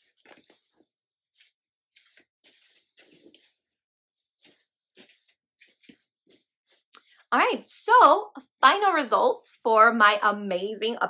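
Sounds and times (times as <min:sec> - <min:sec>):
faint rustles and taps: 0:04.4 - 0:06.8.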